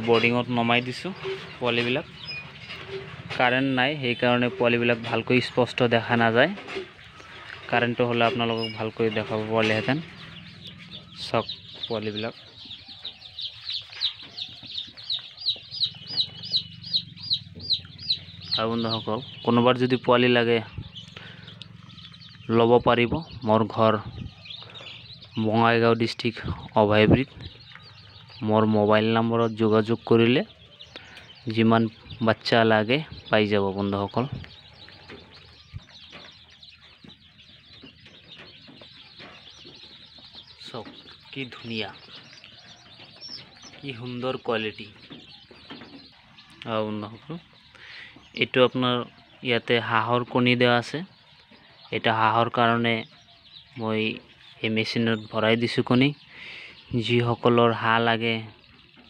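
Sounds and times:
young chicks peeping: 0.0 - 59.0.

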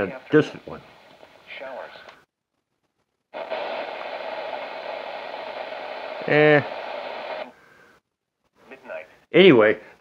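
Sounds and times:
radio static hiss: 0.0 - 8.0
faint broadcast voice on radio: 5.6 - 7.5.

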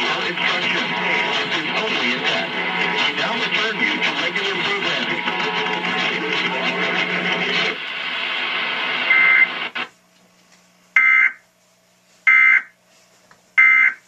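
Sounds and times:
jumbled music and voices: 0.0 - 8.0
harsh data tone bursts: 9.1 - 9.6, 11.0 - 11.4, 12.3 - 12.7, 13.6 - 14.0.

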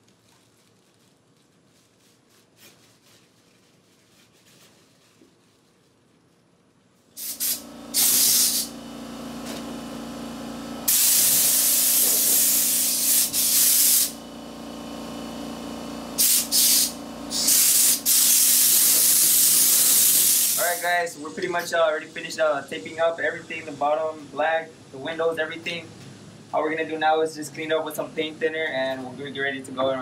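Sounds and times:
air blow gun hissing: 7.2 - 8.8, 10.8 - 14.2, 16.1 - 21.1.

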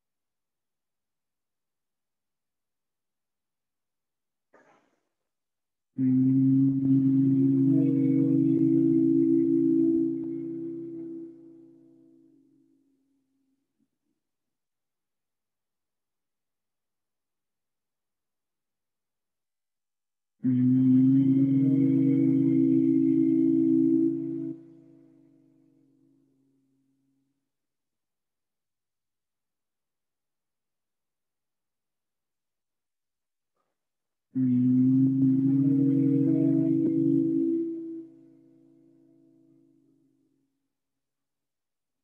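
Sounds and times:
people humming nasal bee-like hum: 6.0 - 11.5, 20.4 - 24.8, 34.4 - 38.2.

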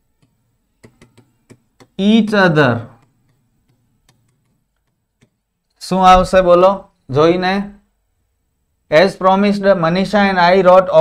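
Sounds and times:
stylus tapping on touchscreen: 0.1 - 2.0, 2.8 - 5.7.

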